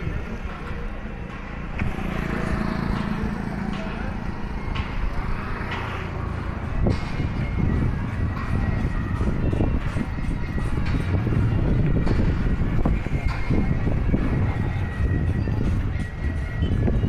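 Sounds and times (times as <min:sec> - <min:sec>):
faint music: 0:00.0 - 0:17.0
low street noise rumble: 0:00.0 - 0:17.0.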